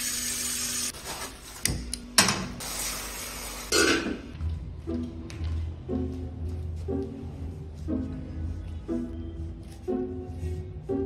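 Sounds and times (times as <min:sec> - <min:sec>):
background music: 0:03.7 - 0:11.0.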